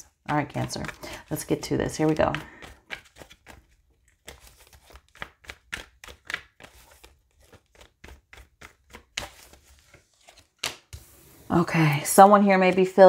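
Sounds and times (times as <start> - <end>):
cards being shuffled: 0.4 - 11.5.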